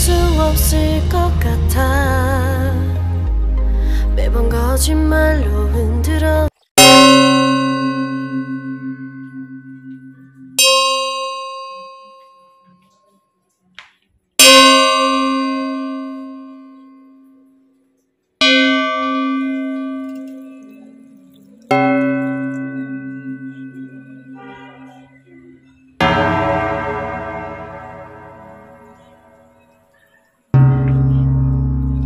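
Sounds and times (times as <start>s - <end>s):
deep bell strokes: 18.6s - 29.8s, 30.6s - 32.0s.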